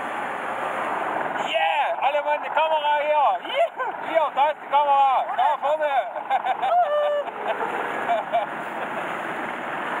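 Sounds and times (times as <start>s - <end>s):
wind and water rushing: 0.0s - 10.0s
people talking: 1.4s - 7.2s.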